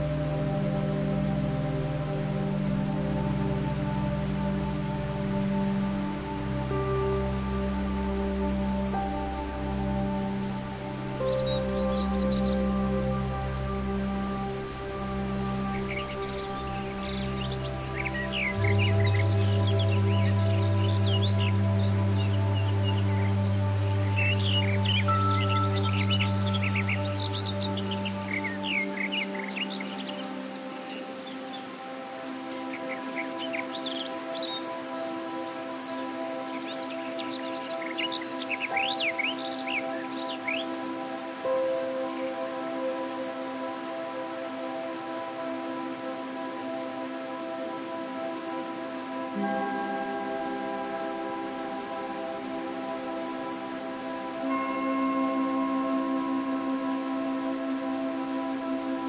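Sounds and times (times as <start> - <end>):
calm music with sustained chords: 0.0 - 59.0.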